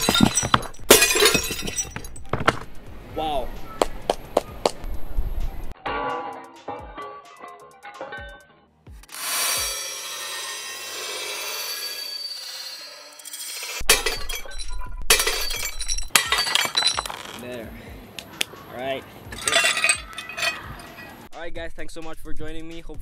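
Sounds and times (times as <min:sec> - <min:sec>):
glass shards clinking: 0:00.0 - 0:02.6, 0:09.7 - 0:17.5, 0:19.3 - 0:21.3
glass shattering: 0:00.0 - 0:02.7, 0:09.7 - 0:17.5, 0:19.3 - 0:21.3
background music: 0:00.0 - 0:10.8, 0:16.1 - 0:23.0.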